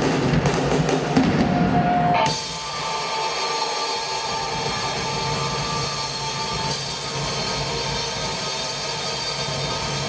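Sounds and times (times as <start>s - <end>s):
ringing drone from band instruments: 2.2s - 10.0s.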